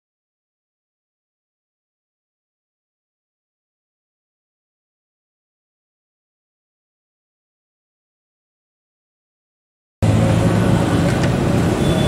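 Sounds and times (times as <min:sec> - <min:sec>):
street traffic noise: 0:10.0 - 0:12.0.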